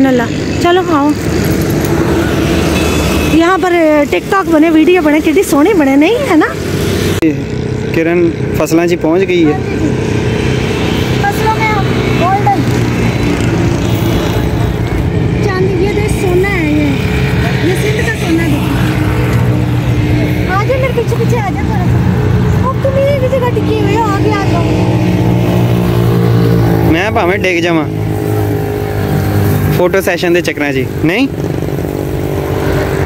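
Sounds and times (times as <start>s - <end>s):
engine running steadily: 0.0s - 33.0s.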